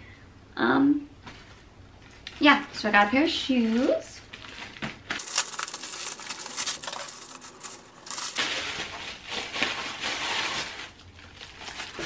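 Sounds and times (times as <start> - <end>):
plastic packaging crinkling: 4.3 - 12.0.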